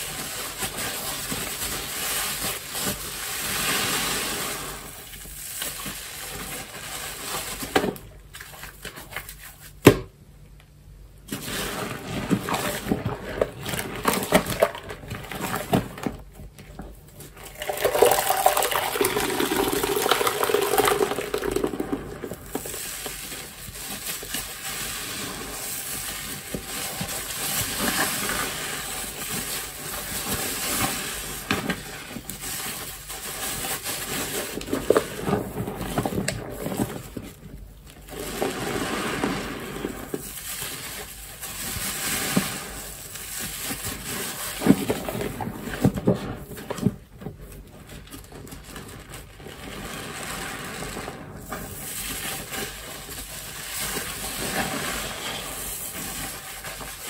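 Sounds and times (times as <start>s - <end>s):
sponge squelching in soapy water: 0.0s - 9.8s, 17.0s - 37.3s, 37.9s - 46.4s, 47.8s - 57.0s.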